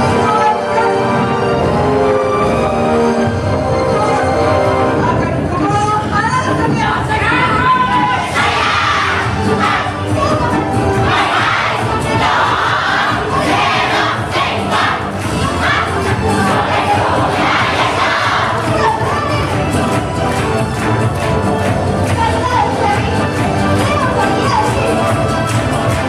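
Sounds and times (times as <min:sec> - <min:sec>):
group shouting in unison: 0:07.8 - 0:10.0, 0:11.0 - 0:18.6.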